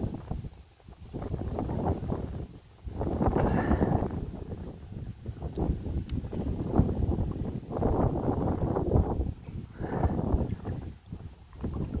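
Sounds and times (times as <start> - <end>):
storm wind buffeting microphone: 0.0 - 12.0.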